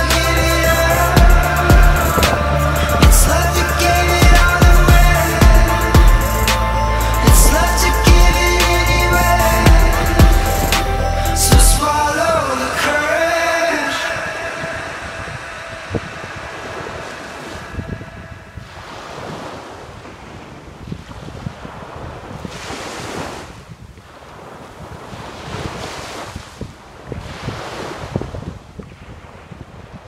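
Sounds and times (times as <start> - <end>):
surf washing up beach: 0.0 - 30.0
wind rumbling on microphone: 0.0 - 30.0.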